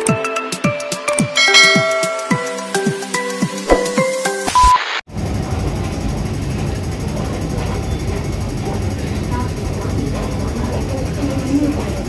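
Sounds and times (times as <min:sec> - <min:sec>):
low station rumble: 0:05.1 - 0:12.0
faint voices: 0:06.4 - 0:12.0.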